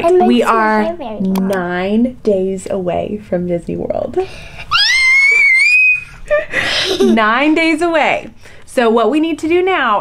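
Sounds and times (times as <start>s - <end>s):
girl's excited squeal: 4.7s - 6.2s.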